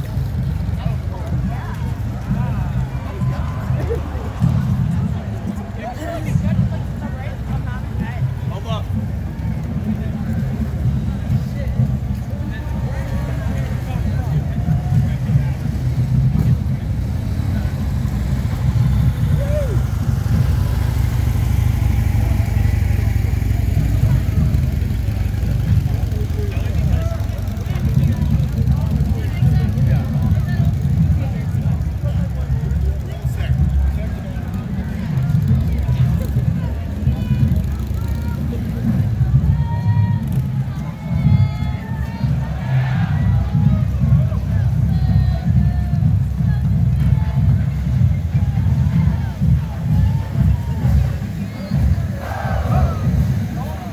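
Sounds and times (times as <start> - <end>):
bystanders chattering: 0.0 - 53.9
low rumble of motorcycles: 0.0 - 53.9.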